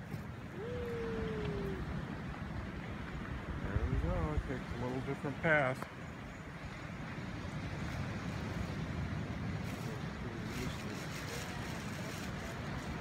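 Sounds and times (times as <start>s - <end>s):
low rumbling background noise: 0.0s - 13.0s.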